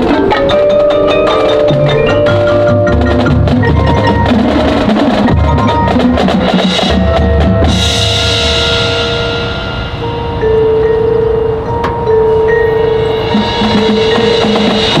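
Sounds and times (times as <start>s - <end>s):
marching band playing: 0.0s - 15.0s
rapid drum and mallet strikes: 0.0s - 15.0s.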